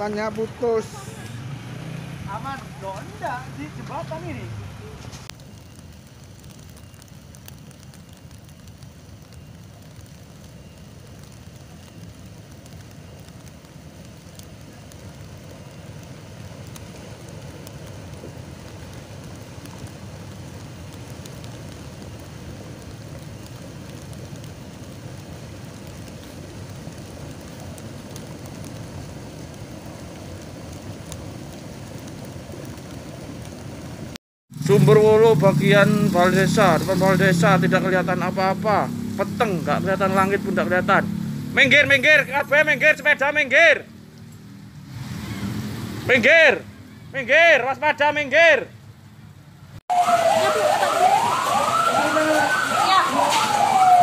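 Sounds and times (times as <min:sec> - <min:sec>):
mudflow rushing and crackling: 0:00.0 - 0:54.0.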